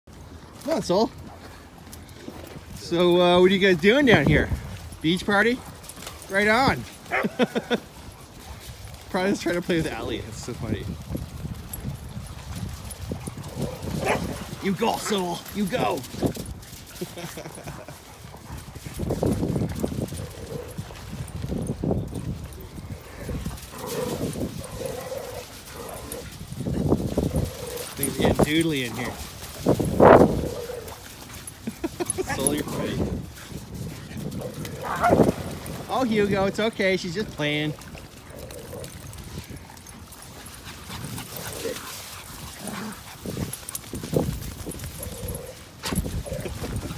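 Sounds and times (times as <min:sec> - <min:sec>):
dog paws on wet sand: 0:00.1 - 0:46.9
dog barking: 0:14.0 - 0:14.3.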